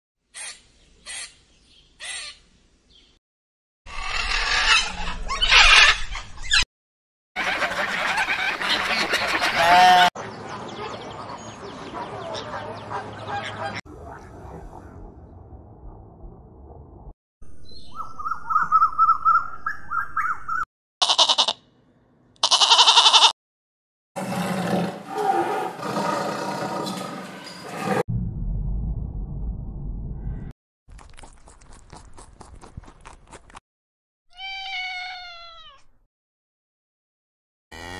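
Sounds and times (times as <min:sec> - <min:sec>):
sheep bleating: 0:09.6 - 0:10.1, 0:21.0 - 0:21.6, 0:22.4 - 0:23.3
tiger growling and roaring: 0:24.2 - 0:28.0.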